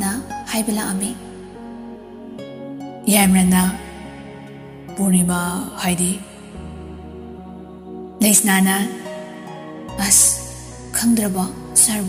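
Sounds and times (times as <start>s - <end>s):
soft new-age music: 0.0s - 12.0s.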